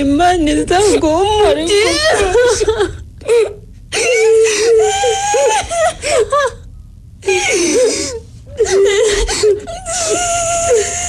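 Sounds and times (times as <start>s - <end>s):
high-pitched voice sobbing: 0.8s - 6.6s, 7.3s - 11.0s.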